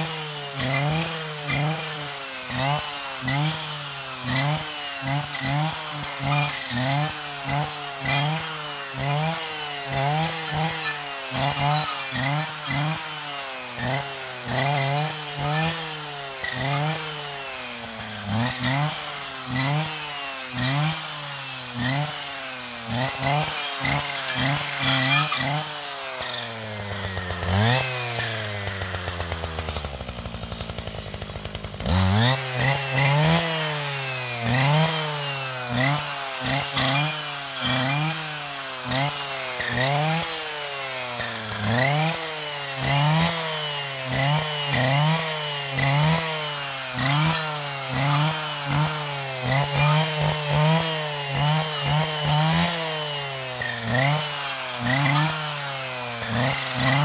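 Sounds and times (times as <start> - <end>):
blade cutting brushwood: 0.0 - 57.0
brushcutter engine revving: 0.0 - 57.0.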